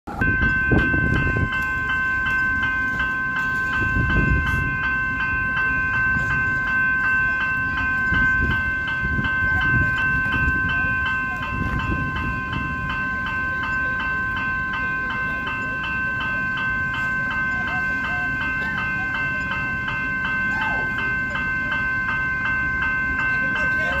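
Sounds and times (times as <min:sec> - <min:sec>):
electric train rumbling: 0:00.1 - 0:24.0
level crossing bells ringing: 0:00.1 - 0:24.0.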